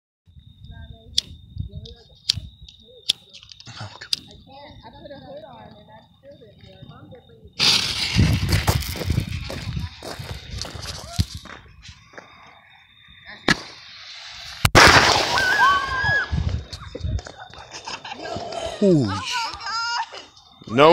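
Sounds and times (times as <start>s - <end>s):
firework hissing and crackling: 7.6s - 11.6s, 13.4s - 16.9s
sharp loud bang: 14.6s - 15.7s.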